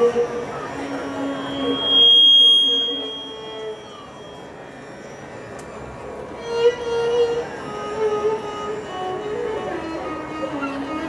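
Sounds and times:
soft violin note: 0:00.0 - 0:05.2
high-pitched feedback whistle: 0:00.0 - 0:09.6
low hall noise: 0:00.0 - 0:11.0.

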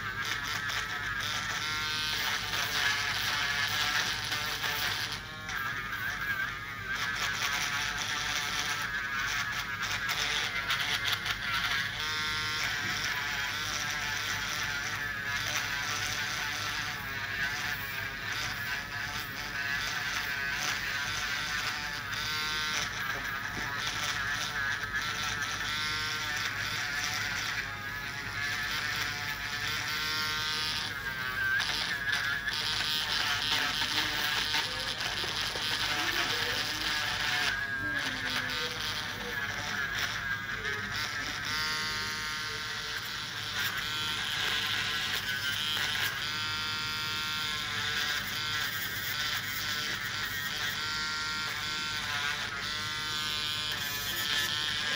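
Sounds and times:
nail drill buzzing whine: 0:00.0 - 0:54.9.

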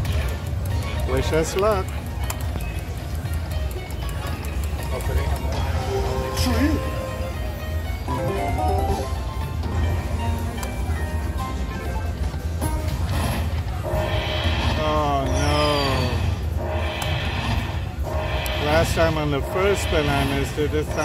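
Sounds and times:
slot machine electronic sounds: 0:00.5 - 0:21.0
chiming gliding tones: 0:13.9 - 0:21.0.

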